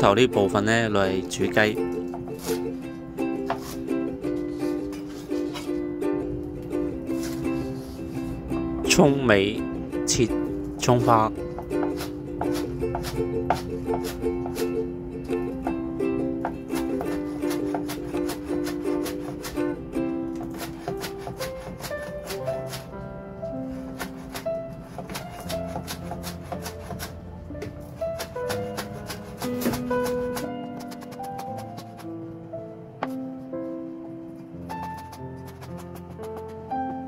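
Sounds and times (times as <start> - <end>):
background music with melody: 0.0 - 37.0
knife chopping on plastic board: 11.6 - 14.7, 16.4 - 19.6, 20.3 - 22.9, 23.9 - 32.1, 34.7 - 36.6.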